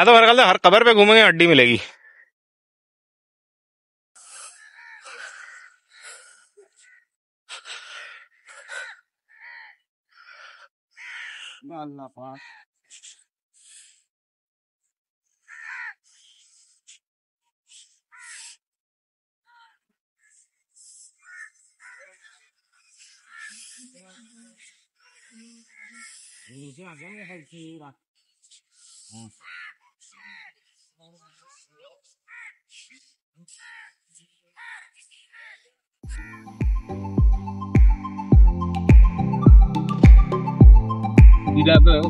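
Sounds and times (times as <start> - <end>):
crows cawing: 1.9 - 2.3, 4.5 - 6.1, 6.8 - 7.1, 8.0 - 9.8, 11.0 - 11.6, 12.4 - 12.7, 15.4 - 16.0, 18.1 - 18.5, 21.2 - 22.5, 23.2 - 23.7, 25.6 - 26.5, 29.3 - 30.6, 32.3 - 32.6, 33.6 - 33.9, 34.6 - 35.6
bird giving harsh calls: 11.0 - 11.6, 15.5 - 16.0, 29.3 - 30.5, 32.3 - 32.6.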